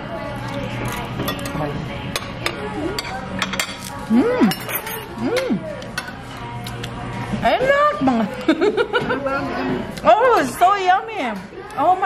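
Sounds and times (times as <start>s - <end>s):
plates and utensils clinking: 0.8s - 6.6s.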